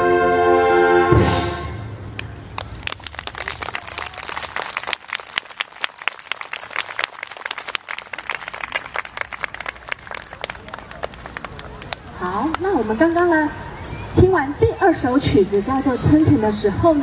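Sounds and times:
audience applauding: 2.2 - 12.7.

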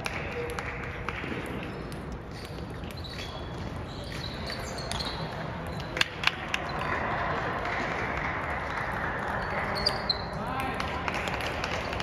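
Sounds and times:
sneakers squeaking on gym floor: 1.3 - 6.9, 9.3 - 10.4.

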